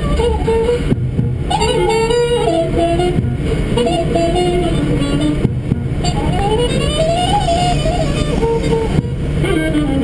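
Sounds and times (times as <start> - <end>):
car road and engine rumble: 0.0 - 10.0
music with held notes: 0.0 - 10.0.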